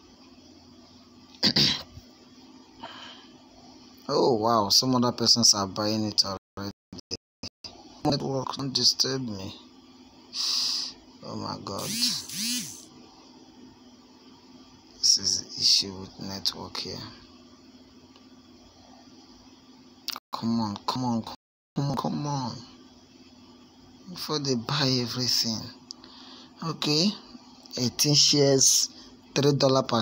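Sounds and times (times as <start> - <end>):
man coughing: 1.4 - 1.9.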